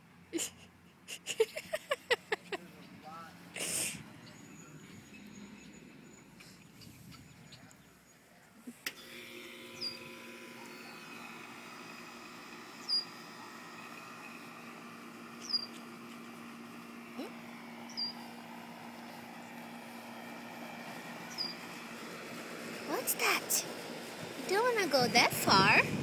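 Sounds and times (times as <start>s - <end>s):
steady low hum: 0.0s - 26.0s
bird's high downward whistle: 9.7s - 11.7s, 12.7s - 13.4s, 15.4s - 15.8s, 17.8s - 18.3s, 21.2s - 21.7s.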